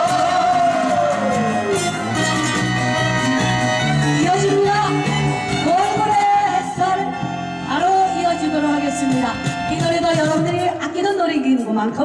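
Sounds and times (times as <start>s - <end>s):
gliding lead melody: 0.0s - 10.8s
keyboard chords: 0.0s - 11.0s
bass: 0.0s - 12.0s.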